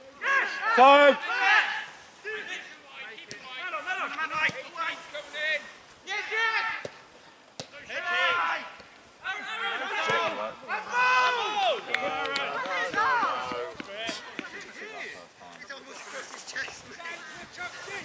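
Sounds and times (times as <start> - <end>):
footballers shouting: 0.1 - 15.8.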